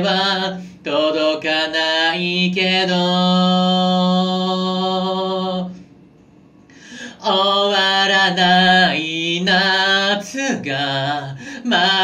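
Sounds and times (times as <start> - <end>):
man singing unaccompanied: 0.0 - 5.8, 6.8 - 12.0.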